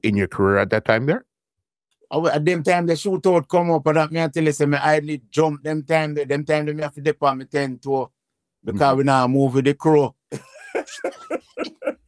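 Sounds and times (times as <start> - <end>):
man laughing in short bursts: 10.4 - 12.0.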